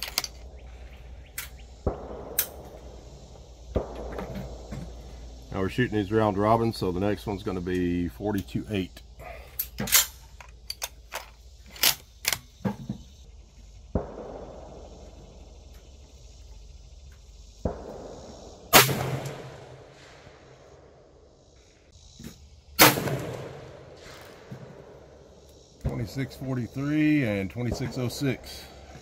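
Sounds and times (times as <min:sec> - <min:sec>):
sharp clicks and knocks: 0:00.0 - 0:00.5
loud rifle shots with echo: 0:01.8 - 0:02.7, 0:03.8 - 0:04.1, 0:13.9 - 0:15.2, 0:17.6 - 0:20.5, 0:22.8 - 0:25.0
faint rifle shots: 0:01.8 - 0:03.0, 0:03.7 - 0:04.6, 0:13.9 - 0:15.3, 0:17.6 - 0:20.5, 0:22.8 - 0:24.9.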